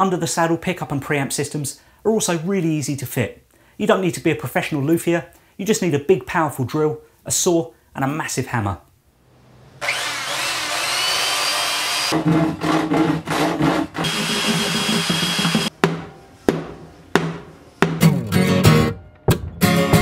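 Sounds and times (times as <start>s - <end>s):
electric drill whirring: 9.8s - 12.2s, 14.0s - 15.7s
hand tools knocking and scraping: 12.1s - 18.1s
background music: 15.6s - 20.0s.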